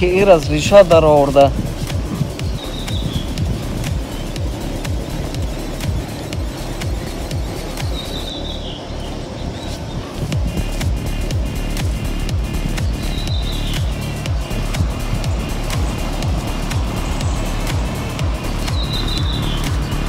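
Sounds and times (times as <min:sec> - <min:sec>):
music with steady beat: 0:00.0 - 0:09.4, 0:10.0 - 0:20.0.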